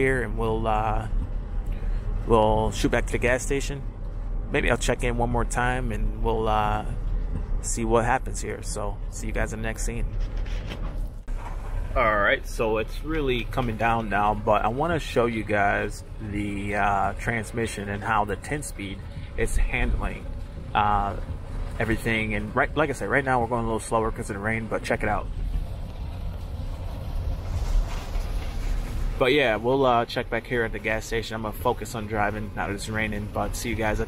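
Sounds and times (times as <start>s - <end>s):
road and engine drone in cab: 0.0s - 34.0s
tyre noise on wet road: 20.0s - 33.6s.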